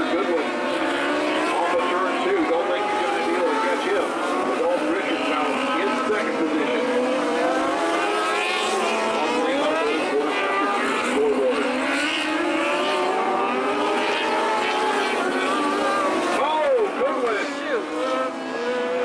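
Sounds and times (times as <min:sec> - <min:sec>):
race car engines running hard: 0:00.0 - 0:19.0.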